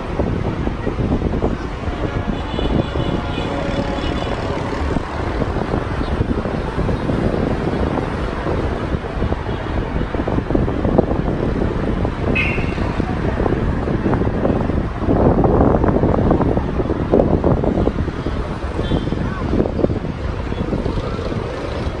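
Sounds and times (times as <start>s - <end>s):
city traffic noise: 0.0s - 22.0s
wind buffeting microphone: 0.0s - 22.0s.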